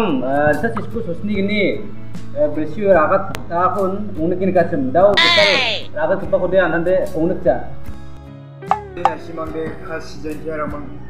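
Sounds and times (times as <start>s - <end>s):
background music with guitar: 0.0s - 11.0s
voice repeating a short phrase: 5.2s - 5.9s.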